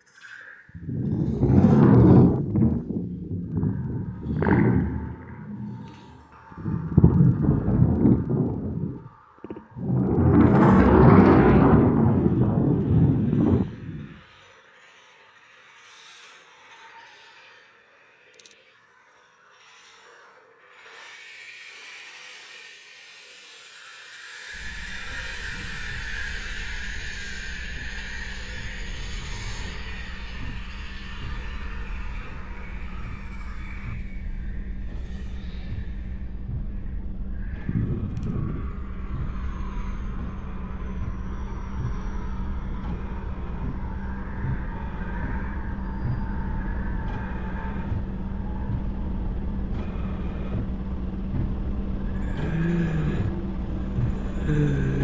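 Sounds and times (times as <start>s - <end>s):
distorted noise surges: 0.7s - 14.3s
steady low drone: 0.7s - 14.4s, 24.6s - 55.0s.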